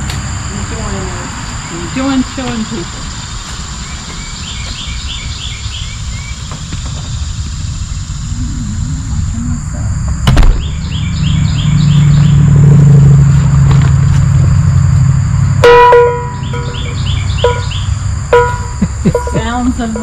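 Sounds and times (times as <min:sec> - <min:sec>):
birds chirping: 0:00.0 - 0:20.0
low steady rumble: 0:00.0 - 0:20.0
cowbell clanking: 0:18.4 - 0:20.0.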